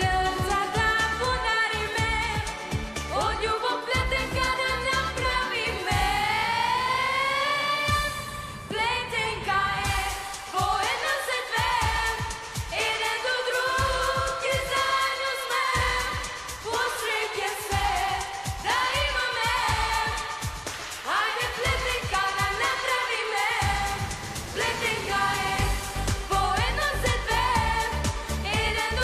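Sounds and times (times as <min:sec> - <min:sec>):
girls singing: 0:00.0 - 0:29.0
pop backing track with drum beat: 0:00.0 - 0:29.0.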